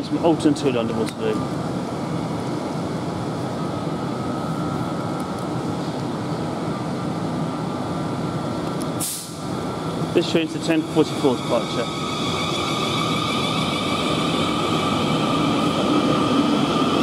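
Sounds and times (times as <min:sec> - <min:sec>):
electric train humming: 0:00.0 - 0:17.0
air hiss: 0:09.0 - 0:09.4.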